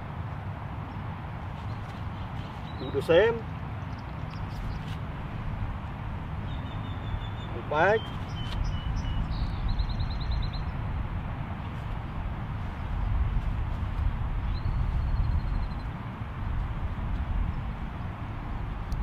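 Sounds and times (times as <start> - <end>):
bird chirping trill: 6.4 - 10.8, 14.4 - 15.9.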